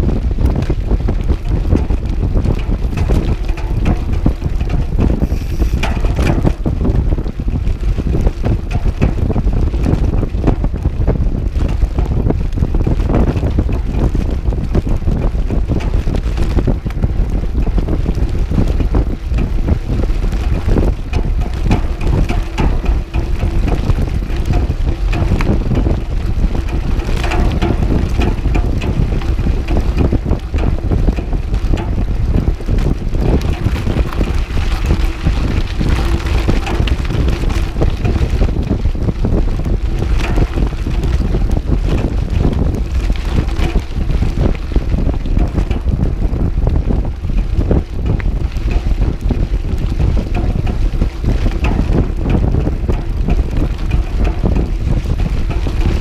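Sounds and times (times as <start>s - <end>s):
bike rattling: 0.0s - 56.0s
tyres on dirt road: 0.0s - 56.0s
wind buffeting microphone: 0.0s - 56.0s.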